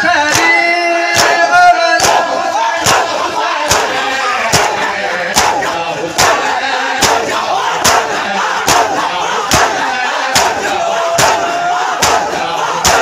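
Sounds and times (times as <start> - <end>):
crowd chanting: 0.0 - 13.0
hands striking chests in unison: 0.3 - 13.0.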